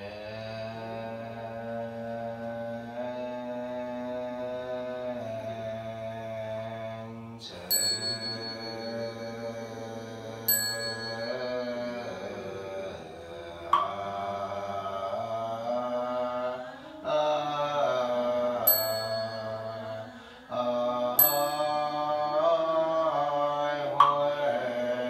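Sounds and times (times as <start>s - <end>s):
group chanting in unison: 0.0s - 25.0s
lower-pitched bell strike: 7.7s - 9.8s
small bell ringing high: 7.7s - 12.6s, 18.7s - 20.2s, 21.2s - 23.2s.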